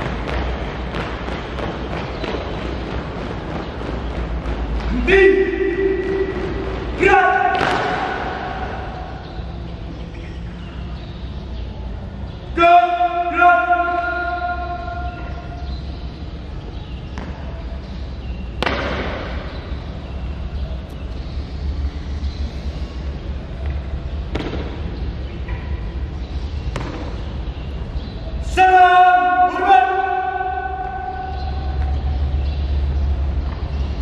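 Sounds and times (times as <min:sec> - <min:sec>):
steady low rumble: 0:00.0 - 0:12.6, 0:30.4 - 0:34.0
person shouting drill command: 0:04.9 - 0:06.3, 0:07.0 - 0:09.0, 0:12.6 - 0:15.2, 0:28.4 - 0:31.6.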